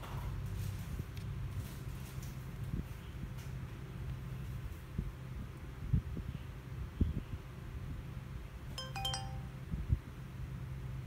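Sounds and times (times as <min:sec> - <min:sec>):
camera startup chime: 0:08.8 - 0:09.5.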